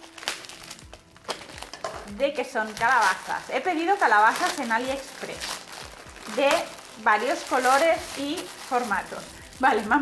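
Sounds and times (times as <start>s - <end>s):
faint background music: 0.0s - 10.0s
plastic bag crinkling: 0.0s - 10.0s.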